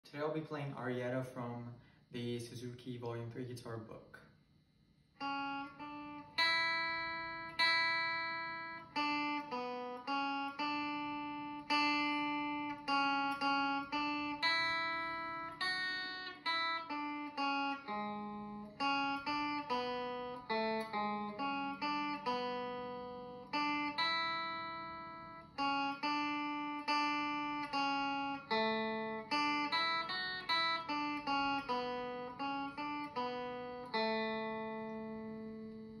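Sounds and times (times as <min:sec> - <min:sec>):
clean electric guitar melody: 0:05.2 - 0:36.0.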